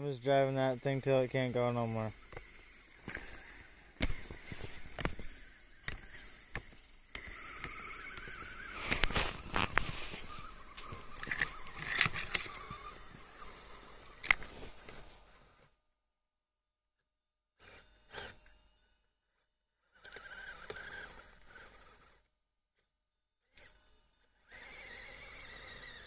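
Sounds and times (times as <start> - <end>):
electric motor whine: 0.0 - 15.8, 19.9 - 22.3, 23.5 - 26.0
crunching bursts: 0.6 - 14.9
footsteps crunching in snow: 8.4 - 13.3, 14.4 - 15.3.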